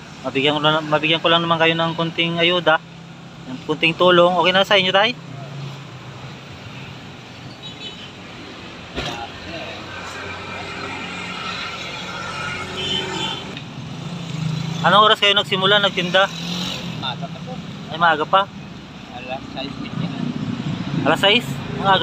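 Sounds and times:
passing road traffic: 0.0s - 22.0s.

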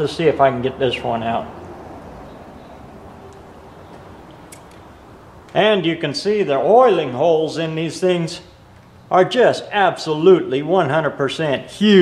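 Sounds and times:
light metallic clicks: 3.3s - 5.6s.

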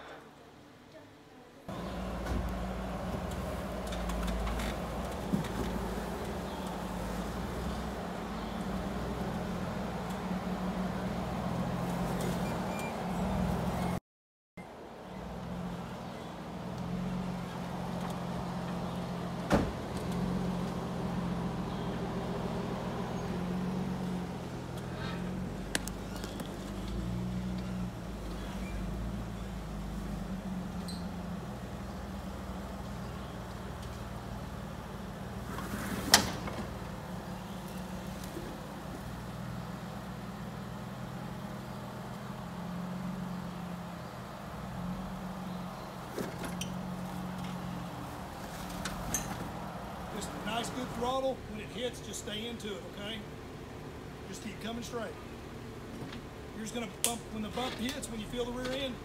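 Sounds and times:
car engine running at low revs: 1.7s - 14.0s, 14.7s - 59.0s.

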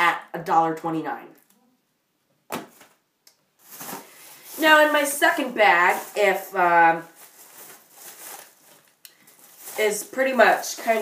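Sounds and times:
plastic bag rustling: 3.6s - 11.0s.

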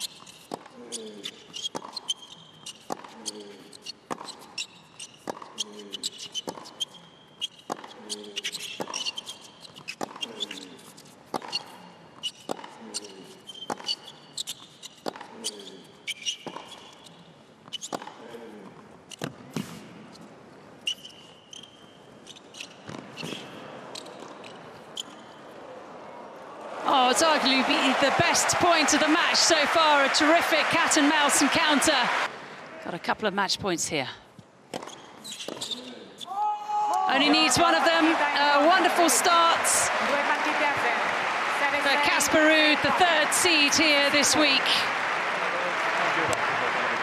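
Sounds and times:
sneaker squeaks: 0.0s - 18.2s, 20.8s - 25.6s, 34.7s - 36.4s
crowd noise: 25.5s - 33.1s, 36.9s - 47.0s.

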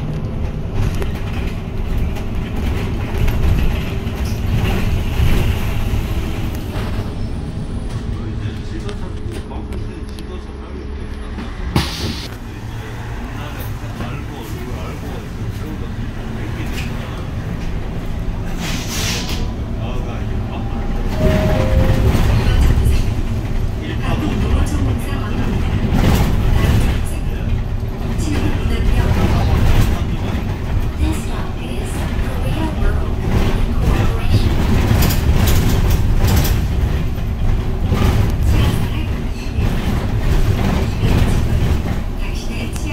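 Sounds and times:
electric bus hum: 0.0s - 42.9s
road and body rumble: 0.0s - 42.9s.

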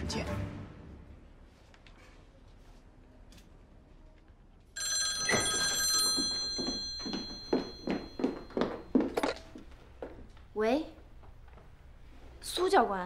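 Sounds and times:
telephone bell ringing: 4.8s - 9.4s.

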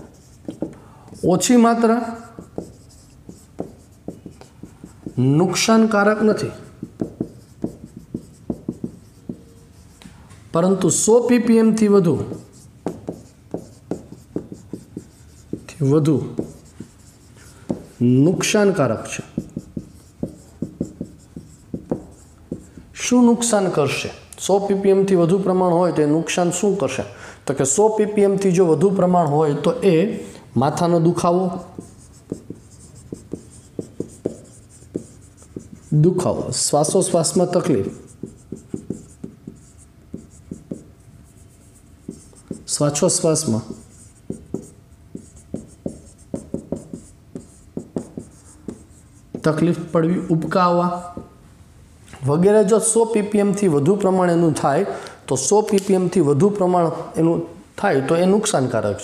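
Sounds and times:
marker writing on whiteboard: 0.0s - 10.2s, 10.8s - 23.7s, 30.9s - 51.4s.

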